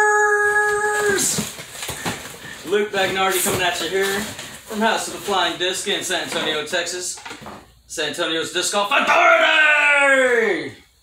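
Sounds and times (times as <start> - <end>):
man exclaiming ooh: 0.0 - 1.4.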